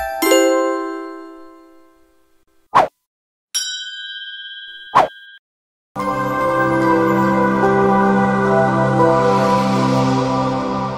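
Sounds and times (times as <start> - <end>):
soft ambient music: 6.0 - 10.9.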